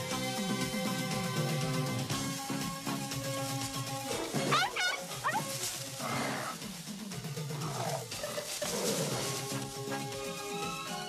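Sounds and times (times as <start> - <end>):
background music: 0.0 - 11.0
dog yelping: 4.1 - 5.7.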